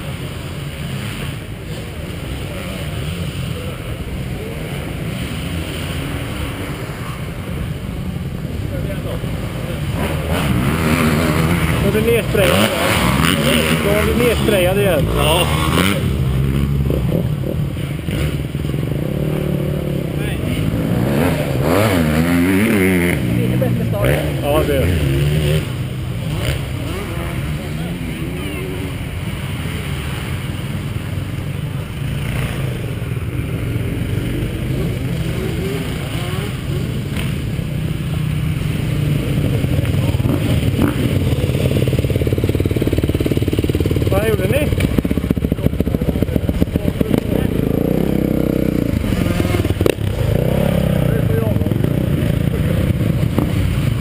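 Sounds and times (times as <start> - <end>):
motocross bike engine running: 29.0 - 54.0.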